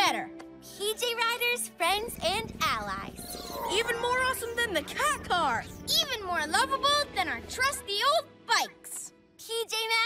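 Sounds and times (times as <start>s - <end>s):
creature purring low rumble: 2.0s - 5.8s
bending voice-like calls: 2.0s - 6.9s.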